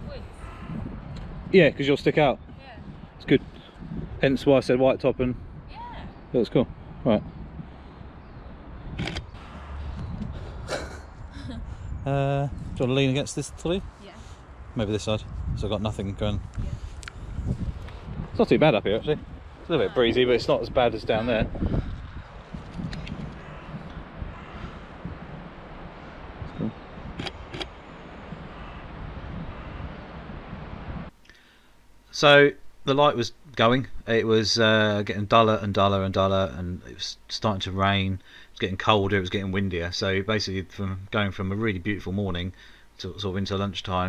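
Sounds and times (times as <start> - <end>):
wind rumbling on microphone: 0.0 - 31.2
sharp clicks: 9.0 - 9.4, 22.6 - 24.0, 27.2 - 27.8
person laughing: 10.5 - 11.7.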